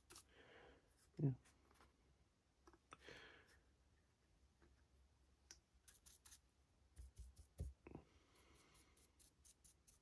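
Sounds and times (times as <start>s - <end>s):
paintbrush scratching: 5.8s - 7.7s, 8.4s - 10.0s.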